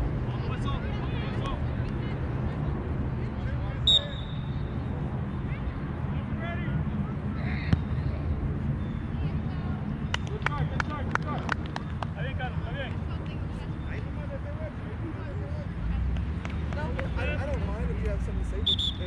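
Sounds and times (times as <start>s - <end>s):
distant shouts and chatter: 0.0s - 19.0s
referee's whistle blast: 3.9s - 4.6s, 18.6s - 19.0s.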